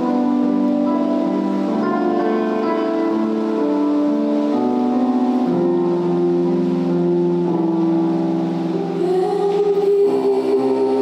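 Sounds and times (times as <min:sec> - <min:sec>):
electronic keyboard chords: 0:00.0 - 0:11.0
woman singing: 0:09.0 - 0:11.0.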